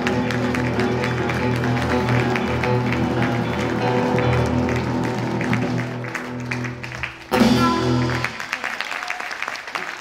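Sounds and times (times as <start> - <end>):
guitar playing: 0.0 - 8.4
grand piano: 0.0 - 8.6.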